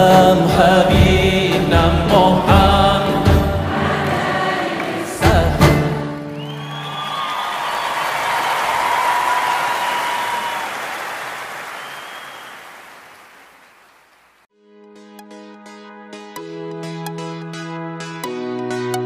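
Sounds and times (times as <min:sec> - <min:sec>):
choir singing chord: 0:03.6 - 0:05.3
audience applause and cheering: 0:03.7 - 0:05.2, 0:05.8 - 0:14.5.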